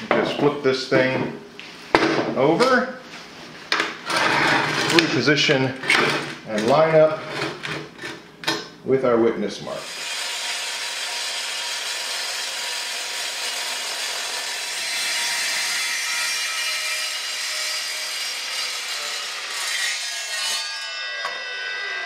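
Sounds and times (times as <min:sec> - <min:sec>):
saw blade spinning down: 0:09.8 - 0:15.8, 0:17.1 - 0:22.0
saw cutting steel tube: 0:09.8 - 0:22.0.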